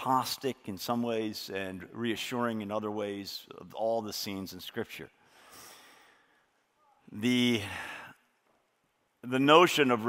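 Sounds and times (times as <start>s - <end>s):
man inhaling into microphone: 5.2s - 6.5s.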